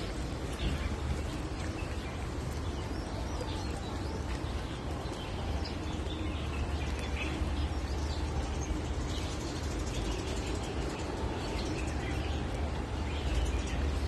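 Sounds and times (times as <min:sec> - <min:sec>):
birds chirping: 0:00.0 - 0:14.0
steady low rumble: 0:00.0 - 0:14.0.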